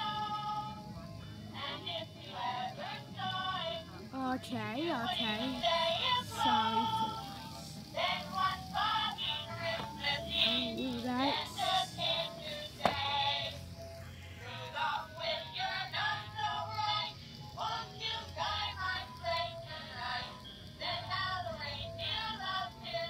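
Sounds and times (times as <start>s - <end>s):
toy playing song with singing: 0.0s - 23.0s.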